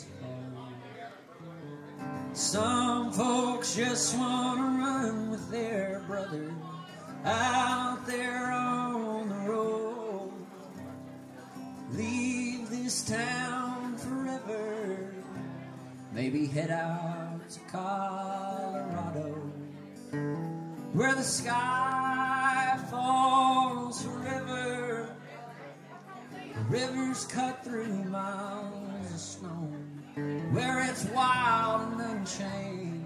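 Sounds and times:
man singing: 0:00.0 - 0:10.8, 0:11.8 - 0:20.0, 0:20.8 - 0:33.0
strummed acoustic guitar: 0:00.0 - 0:33.0.

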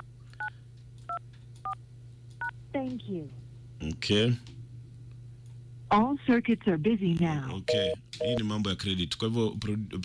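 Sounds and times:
telephone keypad beeps: 0:07.7 - 0:08.4.

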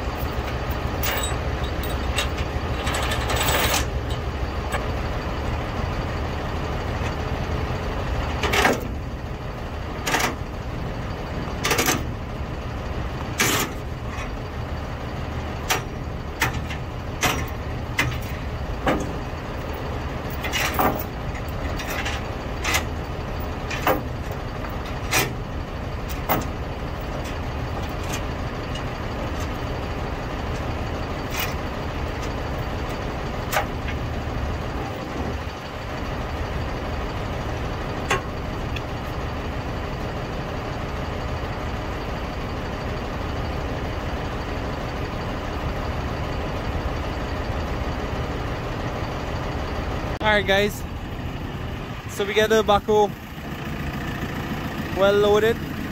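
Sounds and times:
diesel engine idling: 0:00.0 - 0:55.9.

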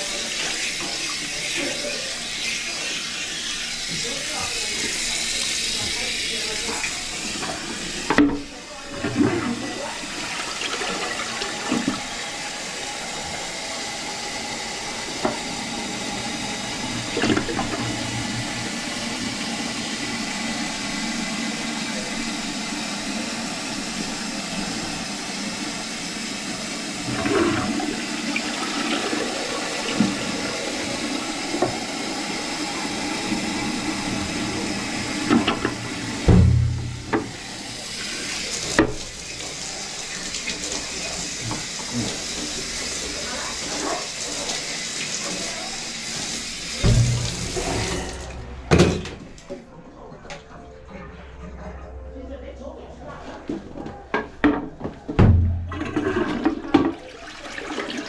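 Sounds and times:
toilet flushing: 0:00.0 - 0:49.6, 0:53.5 - 0:58.0
heavy low thump: 0:36.2 - 0:37.4, 0:46.8 - 0:49.3.

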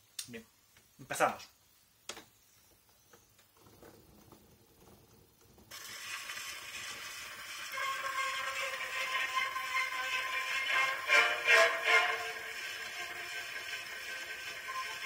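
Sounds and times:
record surface hiss and crackle: 0:00.0 - 0:07.7.

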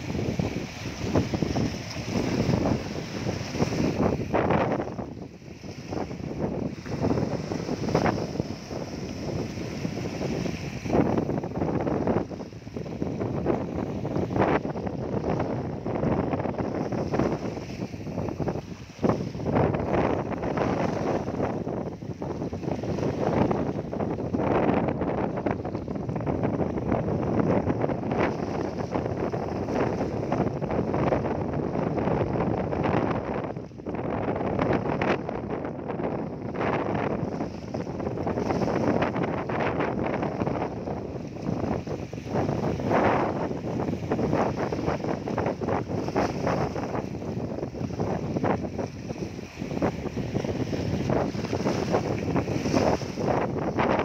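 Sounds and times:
waves splashing over rocks: 0:00.0 - 0:54.0
wind buffeting microphone: 0:00.0 - 0:54.0.

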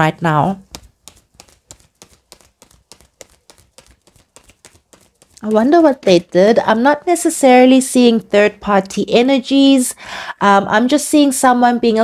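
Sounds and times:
cards being shuffled: 0:00.6 - 0:06.1.

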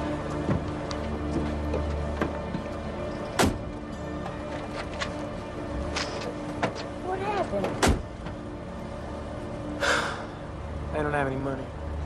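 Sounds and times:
car engine rumble: 0:00.0 - 0:12.0
car door slamming: 0:03.4 - 0:03.7, 0:07.6 - 0:08.4.

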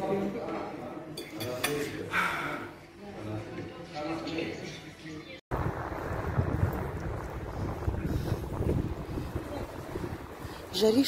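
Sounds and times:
wind buffeting microphone: 0:05.5 - 0:11.0.

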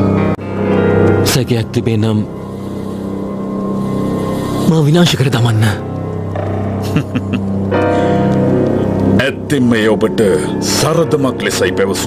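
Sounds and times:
steady low drone: 0:05.7 - 0:11.2.

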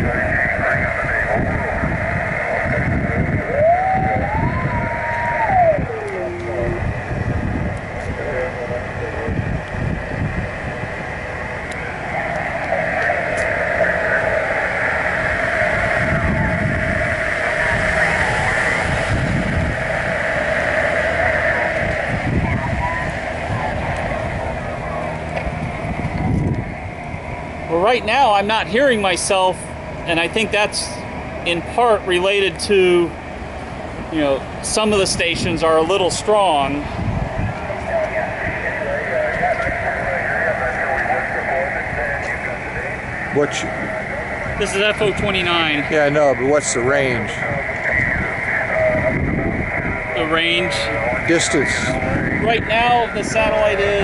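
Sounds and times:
radio whistling tone: 0:00.0 - 0:33.2, 0:34.1 - 0:54.0
garbled radio voices: 0:00.0 - 0:54.0
low rumble: 0:00.0 - 0:54.0.

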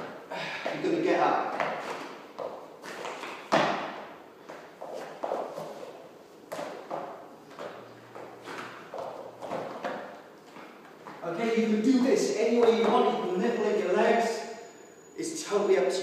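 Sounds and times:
thuds on rubber gym floor: 0:03.5 - 0:04.1.

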